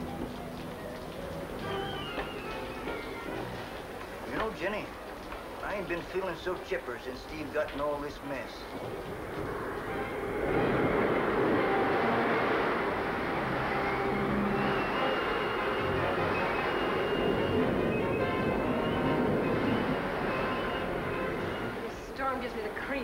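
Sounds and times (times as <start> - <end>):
heavy rain: 0.0 - 23.0
wind roaring: 8.2 - 23.0.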